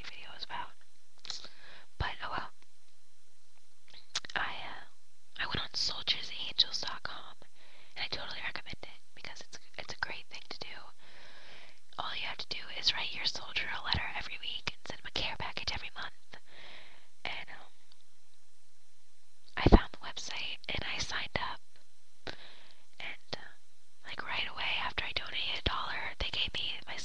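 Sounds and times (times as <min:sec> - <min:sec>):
person whispering: 0:00.0 - 0:02.5, 0:03.9 - 0:07.4, 0:08.0 - 0:10.9, 0:12.0 - 0:16.2, 0:17.2 - 0:17.7, 0:19.6 - 0:21.6, 0:23.0 - 0:27.0.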